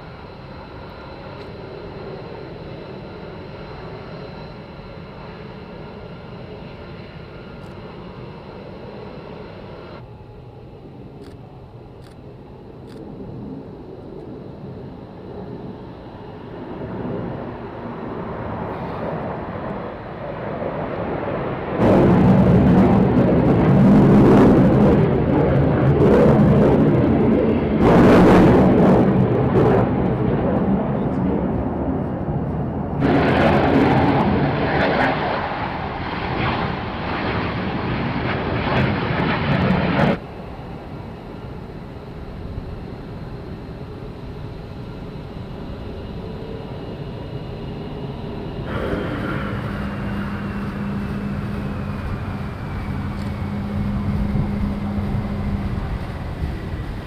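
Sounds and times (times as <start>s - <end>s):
fighter jets passing: 0.0s - 57.0s
jet engine drone with whine: 0.0s - 57.0s.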